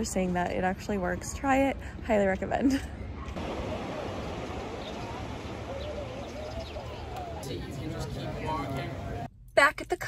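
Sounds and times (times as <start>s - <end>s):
faint distant voices: 3.1s - 9.3s
gentle surf: 3.3s - 9.3s.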